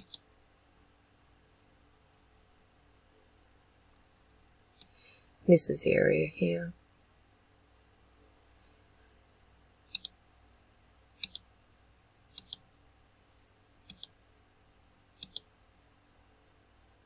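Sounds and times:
computer mouse clicking: 0.0 - 0.3, 4.8 - 5.0, 9.9 - 10.2, 11.2 - 11.5, 12.3 - 12.6, 13.8 - 14.2, 15.2 - 15.5
faint low hum: 0.0 - 17.0.

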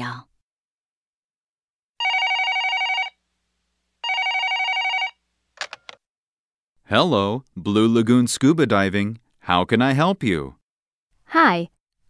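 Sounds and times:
telephone ringing: 2.0 - 3.2, 4.0 - 6.0.

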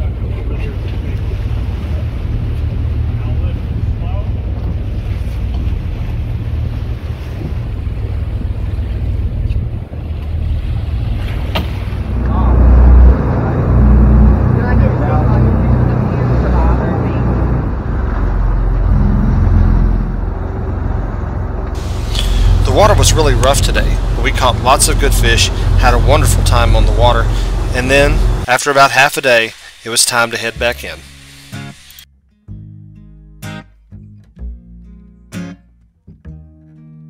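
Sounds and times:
wind buffeting microphone: 0.0 - 28.4
waves washing against hull: 0.0 - 31.0
boat engine running: 0.0 - 32.2.

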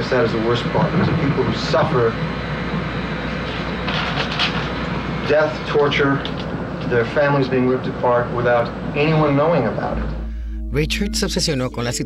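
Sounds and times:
low hum: 9.6 - 12.0.

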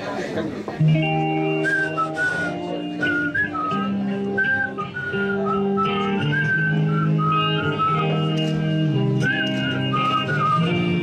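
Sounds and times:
live band playing: 0.5 - 11.0
guitar chords: 0.8 - 11.0
whistled melody: 1.5 - 11.0.

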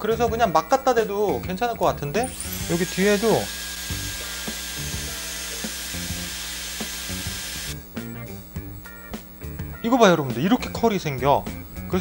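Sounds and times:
hair styler blowing air: 2.3 - 7.8.

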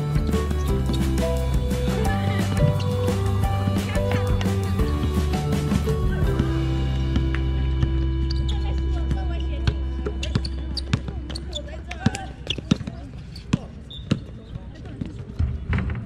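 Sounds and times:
basketball bouncing on court: 7.1 - 15.5.

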